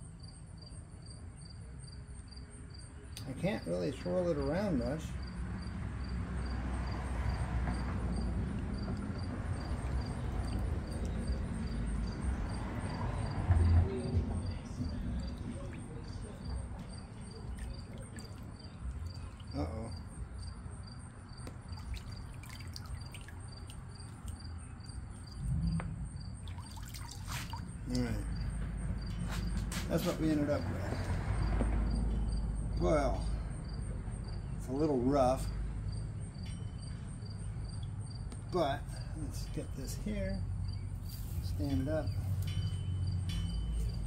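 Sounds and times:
water sloshing in a plastic tub: 0:06.9 - 0:20.4, 0:21.4 - 0:25.4, 0:26.3 - 0:28.4
water pouring and dripping: 0:08.9 - 0:12.7, 0:15.2 - 0:19.6, 0:21.5 - 0:24.5, 0:26.4 - 0:28.1.

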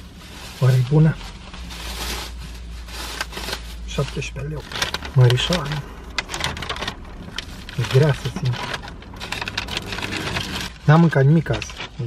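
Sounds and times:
paper and plastic bag crinkling: 0:00.0 - 0:12.0.

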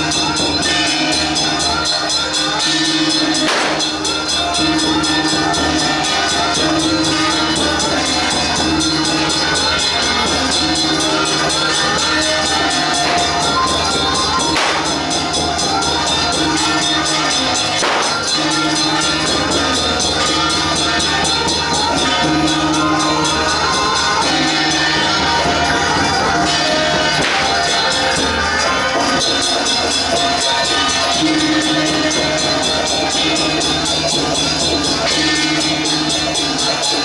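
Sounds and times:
drum and gong ensemble: 0:00.0 - 0:37.0
held melody line: 0:00.0 - 0:37.0.

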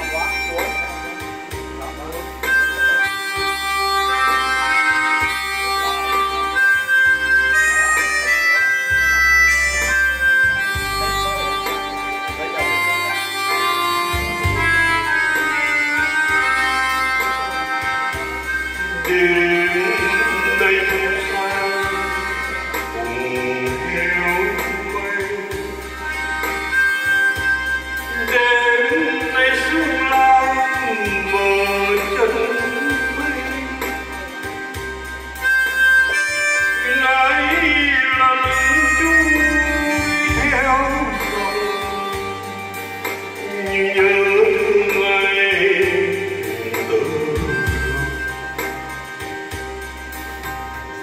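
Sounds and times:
electronic keyboard music: 0:00.0 - 0:51.0
man singing into a microphone: 0:02.3 - 0:34.8, 0:35.6 - 0:49.2.

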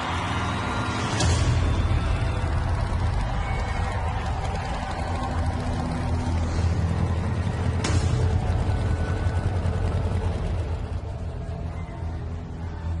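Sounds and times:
motorcycle engine running: 0:00.0 - 0:12.9.

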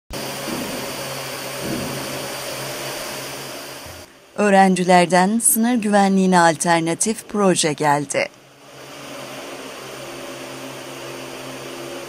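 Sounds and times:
drone rotors whirring: 0:00.2 - 0:04.4, 0:05.3 - 0:12.0.

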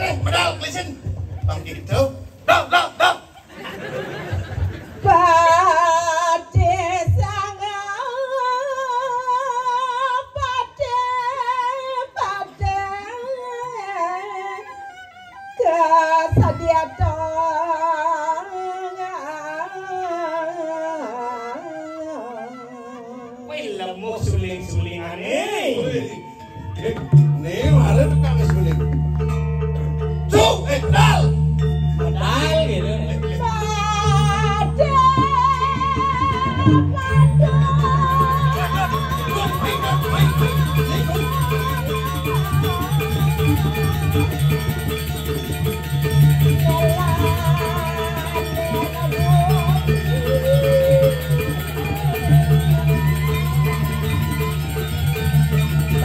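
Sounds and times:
person singing into a microphone: 0:05.0 - 0:28.3, 0:32.0 - 0:44.6, 0:46.4 - 0:54.9
gamelan low tones: 0:25.6 - 0:56.0
person singing through loudspeakers: 0:32.2 - 0:44.2.

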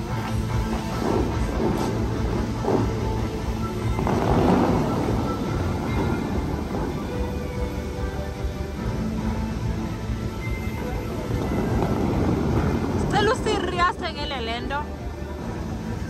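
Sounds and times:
music playing: 0:00.0 - 0:16.0
rushing splashing fountain water: 0:00.0 - 0:16.0.

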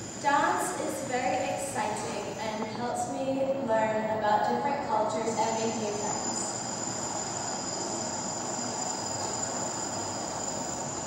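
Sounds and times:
thin high steady whine: 0:00.0 - 0:11.0.

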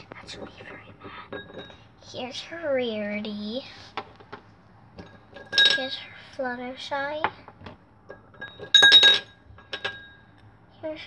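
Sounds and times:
glass ringing: 0:01.3 - 0:01.8, 0:05.0 - 0:05.9, 0:08.1 - 0:10.3
plastic toys clinking on glass bowl: 0:05.0 - 0:06.0, 0:08.2 - 0:10.1.

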